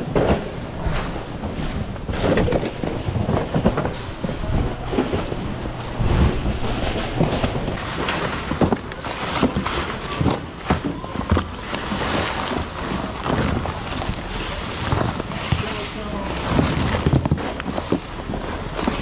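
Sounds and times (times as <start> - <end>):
boxes and packages knocking together: 0.0 - 19.0
packages rustling: 0.0 - 19.0.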